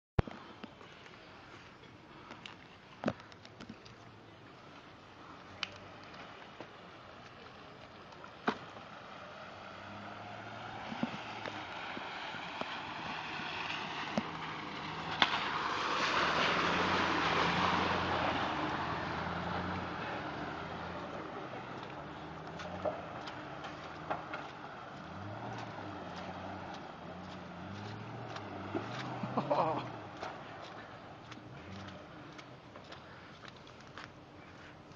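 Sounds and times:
tyres splashing through water: 0.3s - 34.9s.

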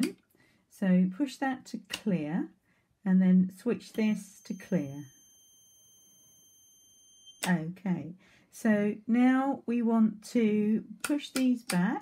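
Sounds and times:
faint high-pitched electronic whine: 3.8s - 7.6s.

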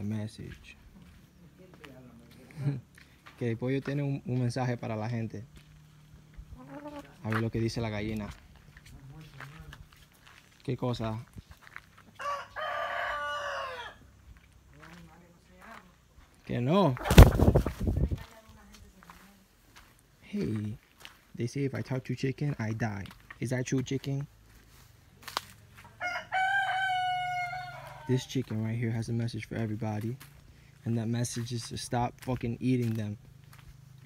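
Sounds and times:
chicken crowing: 12.1s - 14.1s, 26.0s - 28.3s.

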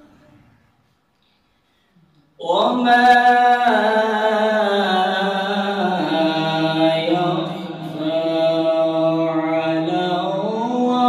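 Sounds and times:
man chanting melodically: 2.4s - 11.0s.

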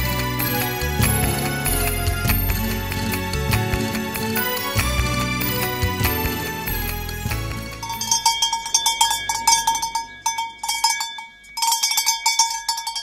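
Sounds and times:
metal goat bell clanking: 7.2s - 13.0s.

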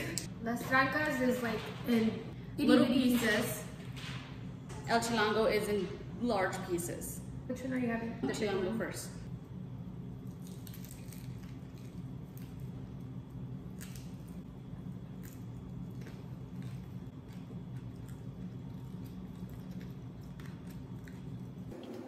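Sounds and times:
chewing with crunching clicks: 15.1s - 21.9s.

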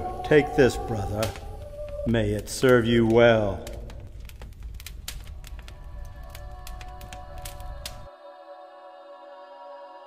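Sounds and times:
sustained chord of tones: 0.0s - 1.5s
low rumble with crackles: 0.0s - 8.1s.

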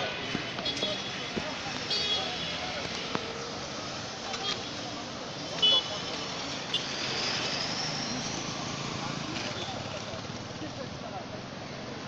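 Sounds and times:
cars and motorcycles passing: 0.0s - 12.0s
crowd of voices talking: 0.0s - 12.0s.

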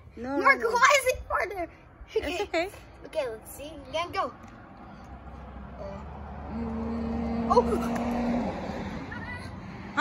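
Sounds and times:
person humming: 5.8s - 8.0s.

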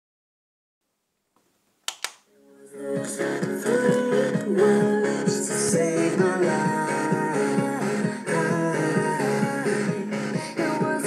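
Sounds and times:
plastic button click: 1.9s - 2.2s.

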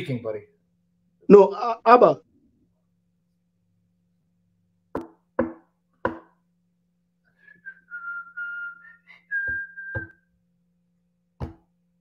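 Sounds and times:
person whistling: 7.4s - 10.2s.

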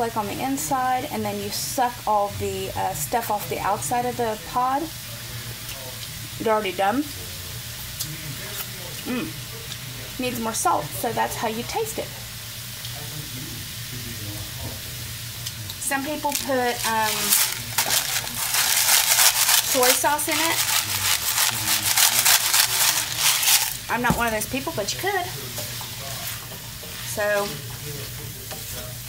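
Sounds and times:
vegetables sizzling in oil: 14.8s - 29.0s
spatula scraping through pods: 16.2s - 24.5s.

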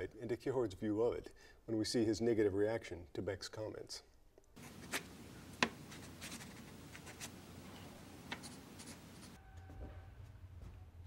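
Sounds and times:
pen scratching on paper: 4.6s - 7.4s, 8.2s - 9.4s.

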